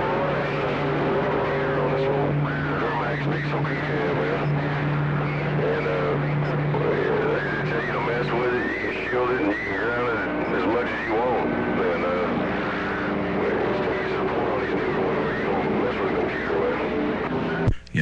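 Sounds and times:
low hum: 0:00.0 - 0:18.0
garbled radio voices: 0:01.2 - 0:16.9.

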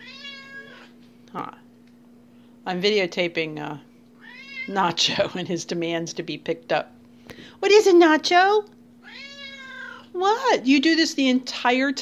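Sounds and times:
cat meowing: 0:00.0 - 0:00.9, 0:04.2 - 0:04.8, 0:09.0 - 0:10.0.

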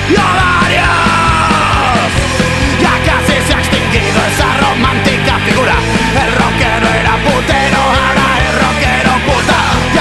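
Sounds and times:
loud punk rock music: 0:00.0 - 0:10.0
steady drum beat: 0:00.0 - 0:10.0.

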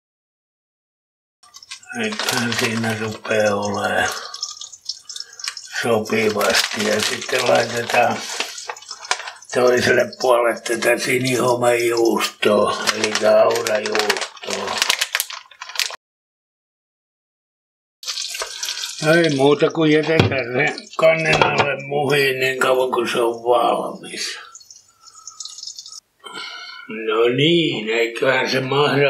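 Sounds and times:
omelette frying in oil: 0:01.4 - 0:16.0, 0:18.0 - 0:26.0
man's voice: 0:01.9 - 0:04.2, 0:05.7 - 0:08.4, 0:09.5 - 0:14.8, 0:19.0 - 0:24.5, 0:26.9 - 0:29.0.

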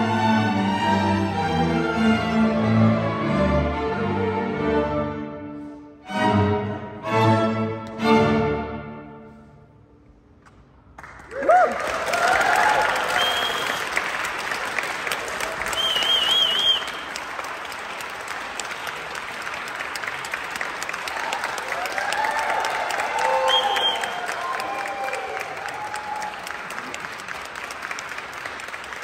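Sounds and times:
audience applause: 0:11.0 - 0:29.0
crowd cheering: 0:11.0 - 0:29.0.

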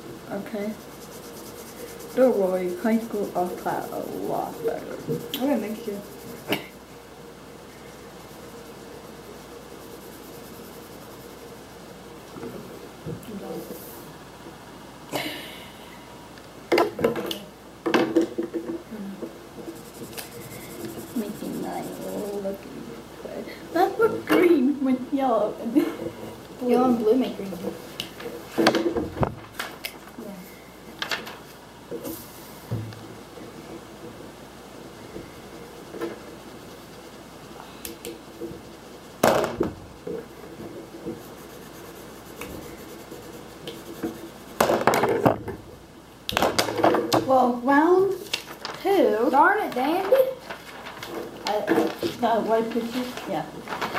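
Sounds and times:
felt-tip marker scratching on paper: 0:00.3 - 0:06.8, 0:07.8 - 0:11.6, 0:19.7 - 0:22.6, 0:35.4 - 0:39.4, 0:41.0 - 0:44.7.

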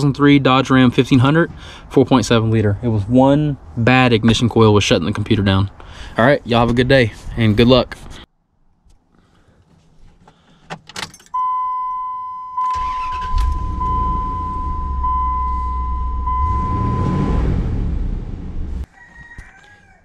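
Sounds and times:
keys clicking in ignition: 0:10.7 - 0:11.4, 0:12.6 - 0:13.8
dashboard warning chime: 0:11.3 - 0:17.6
engine cranking starting and revving: 0:12.6 - 0:18.9.

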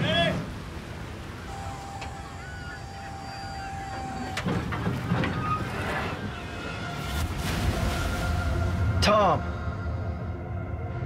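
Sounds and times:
sea noise: 0:00.0 - 0:11.0
wind: 0:00.0 - 0:11.0.

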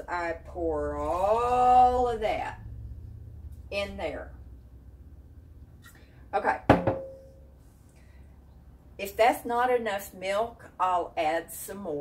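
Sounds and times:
low steady hum: 0:00.0 - 0:12.0
faint ringing tone: 0:06.9 - 0:07.6.

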